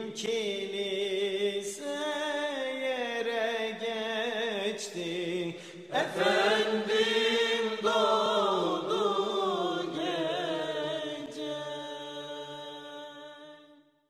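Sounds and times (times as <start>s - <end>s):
religious chant singing: 0.0s - 14.0s.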